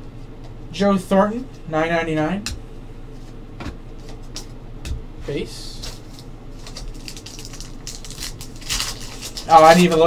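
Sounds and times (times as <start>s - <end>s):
foil wrapper crinkling: 5.8s - 10.0s
wrapper rustling: 5.8s - 10.0s.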